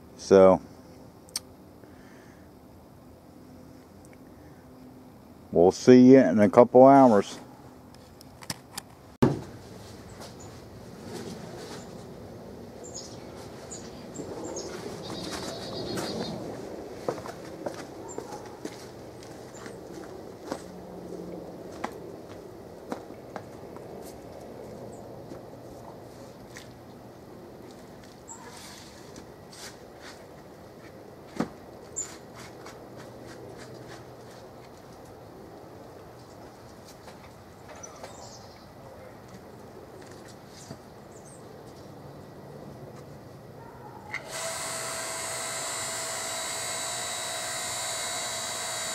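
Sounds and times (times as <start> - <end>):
birds chirping: 12.8 - 16.4
log splitter motor humming: 44.2 - 48.9.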